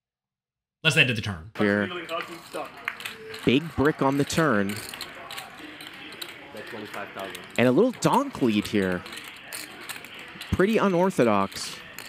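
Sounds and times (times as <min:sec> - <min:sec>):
faint background voices: 0:01.8 - 0:12.0
poker chips clicking: 0:02.0 - 0:12.0.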